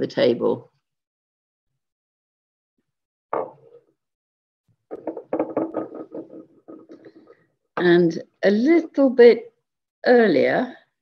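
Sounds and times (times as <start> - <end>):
pottery sherds knocking and clinking: 4.9 - 7.2.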